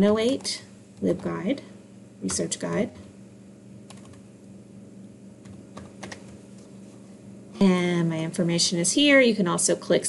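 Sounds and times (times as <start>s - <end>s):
steady low hum: 0.0s - 10.0s
computer keyboard keystrokes: 3.9s - 4.2s, 5.4s - 6.4s.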